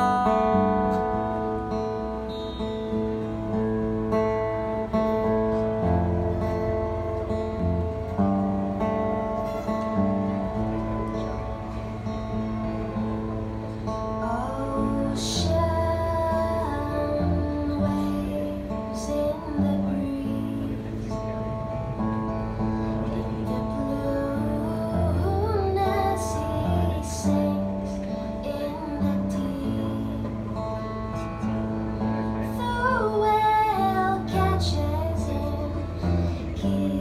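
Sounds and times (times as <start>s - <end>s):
acoustic guitars picked and strummed: 0.0s - 37.0s
woman singing: 14.2s - 21.2s, 23.0s - 30.7s, 32.4s - 37.0s.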